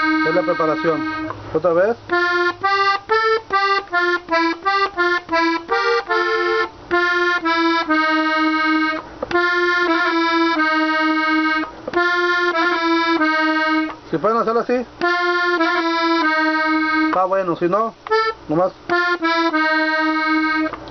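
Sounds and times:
button accordion playing slowly: 0:00.0 - 0:20.9.

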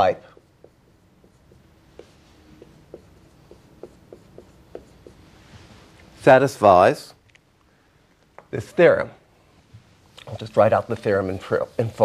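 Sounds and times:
marker squeaking on whiteboard: 0:00.3 - 0:05.2.

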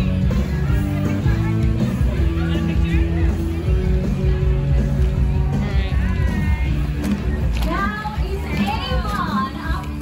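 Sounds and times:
bass-heavy background music: 0:00.0 - 0:10.0
children calling and chattering: 0:00.0 - 0:10.0.

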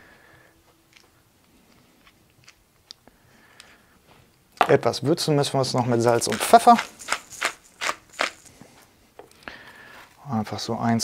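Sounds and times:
spice mill grinding: 0:05.8 - 0:08.6.

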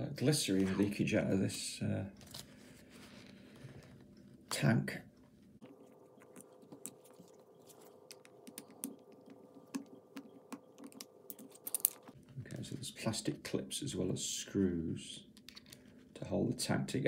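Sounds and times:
faint steady hum: 0:00.0 - 0:17.0
plastic parts clicking and tapping: 0:08.0 - 0:12.2.

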